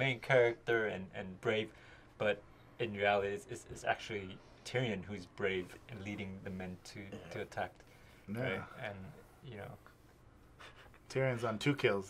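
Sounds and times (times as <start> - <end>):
man speaking softly: 0.0 - 10.0.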